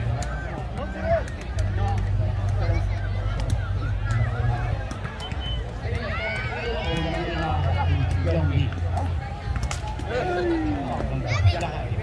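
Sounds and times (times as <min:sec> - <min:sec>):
people talking and calling: 0:00.0 - 0:12.0.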